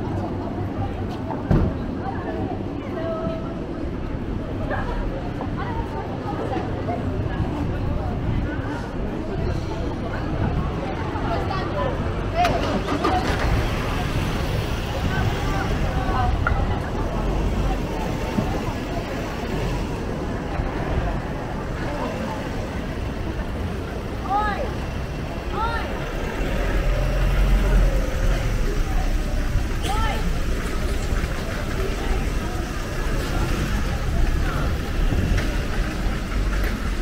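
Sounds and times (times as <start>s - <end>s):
passers-by talking: 0.0s - 37.0s.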